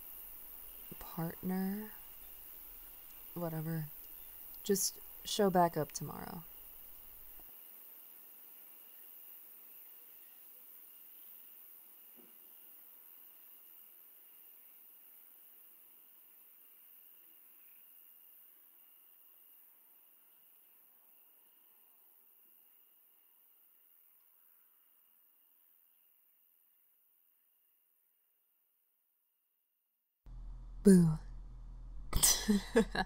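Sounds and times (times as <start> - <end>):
crickets chirring: 0.0 - 5.3.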